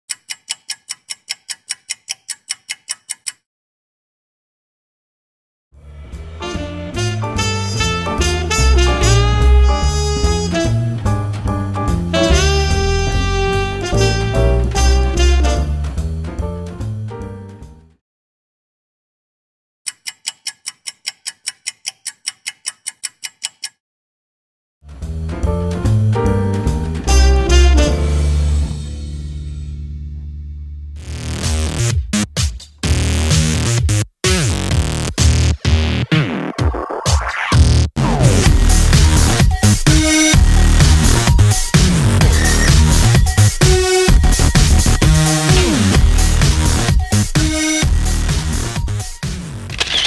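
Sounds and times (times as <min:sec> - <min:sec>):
rapid clock-like ticking: 0:00.1 - 0:03.4, 0:19.9 - 0:23.8, 0:39.0 - 0:49.1.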